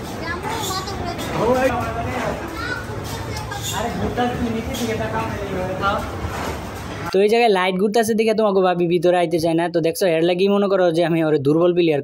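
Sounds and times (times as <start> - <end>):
chatter of people and children: 0.0 - 6.2.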